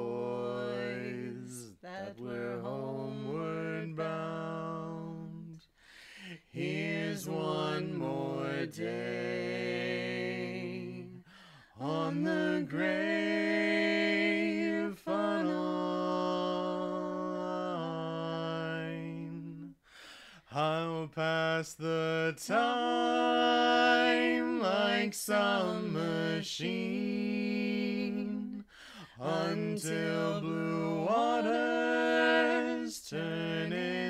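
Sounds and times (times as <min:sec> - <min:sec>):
two voices singing in harmony: 0:00.0 - 0:34.0.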